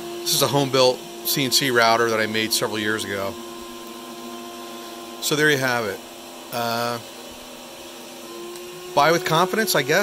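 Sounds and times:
router spindle cutting wood: 0.0s - 10.0s.

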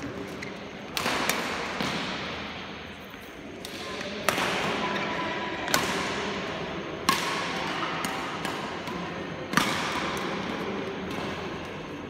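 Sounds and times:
racket hitting shuttlecock: 0.2s - 2.8s, 3.6s - 5.0s, 5.6s - 6.4s, 7.0s - 11.7s.

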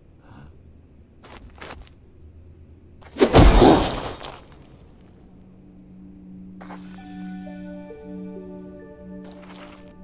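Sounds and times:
heavy thud into sand: 3.2s - 4.4s
low sustained chord: 5.4s - 10.0s.

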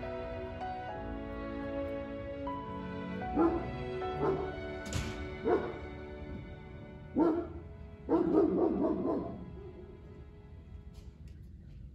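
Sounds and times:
background music: 0.0s - 11.9s.

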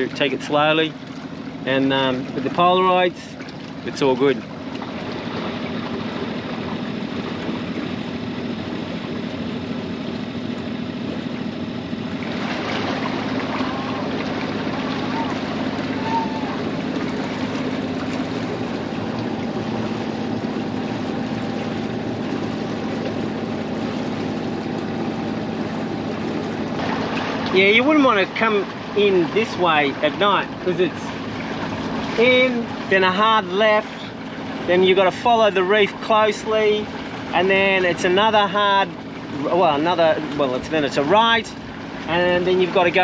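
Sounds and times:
boat engine droning: 0.0s - 43.0s
water and wind rushing: 0.0s - 43.0s.

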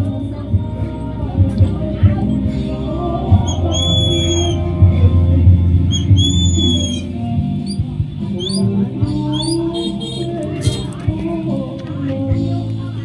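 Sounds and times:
background music: 0.0s - 13.0s
bird whistling and chirping: 3.3s - 4.8s, 5.9s - 10.8s.

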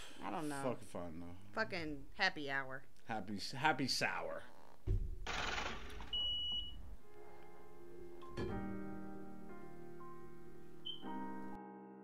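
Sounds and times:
high electronic beep: 6.1s - 6.8s, 10.8s - 11.1s
faint piano-led music: 6.8s - 12.0s.

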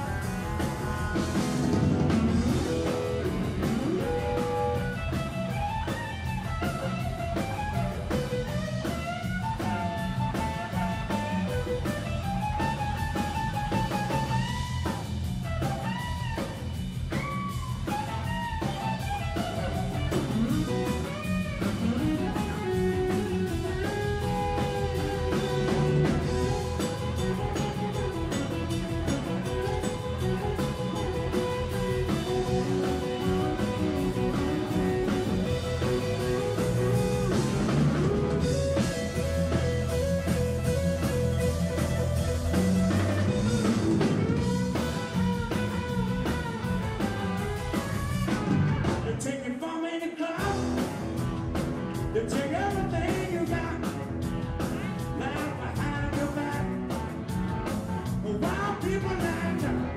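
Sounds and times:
electric guitar solo: 0.0s - 49.0s
blues band playing: 0.0s - 59.9s.

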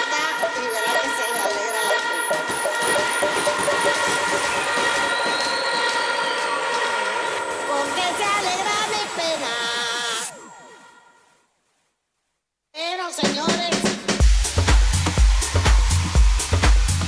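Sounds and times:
house music with vocals: 0.0s - 10.8s, 12.8s - 17.0s.

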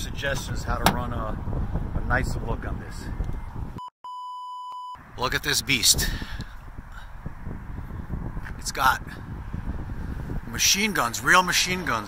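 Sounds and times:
wind rumbling on microphone: 0.0s - 3.8s, 5.0s - 12.0s.

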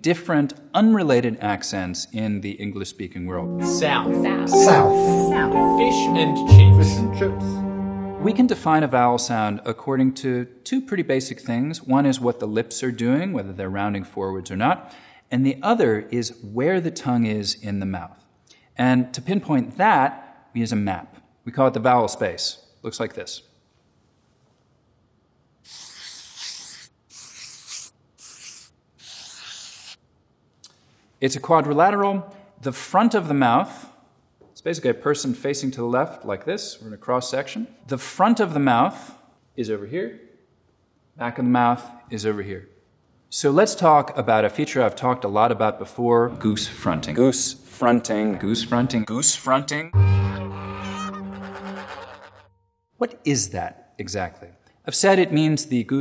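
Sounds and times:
marker scratching on a board: 25.6s - 30.0s
goose honk: 50.1s - 52.5s.

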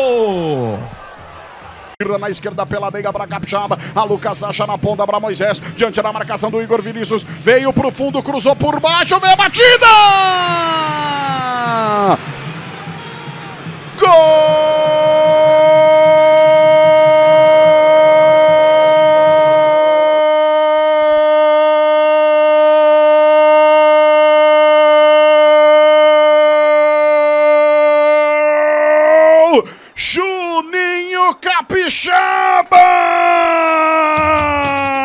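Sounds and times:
commentator shouting goal: 6.1s - 12.2s, 14.0s - 35.0s.

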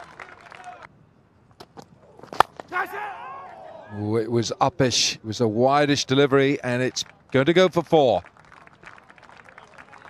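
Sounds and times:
cricket bat striking ball: 2.3s - 2.8s.

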